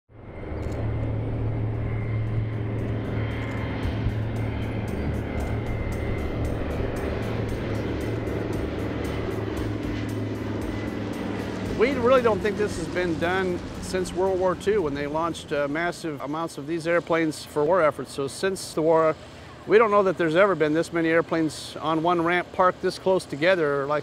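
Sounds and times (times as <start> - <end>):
propeller plane engines droning: 0.1 - 24.0
music with light steady beat: 2.3 - 14.0.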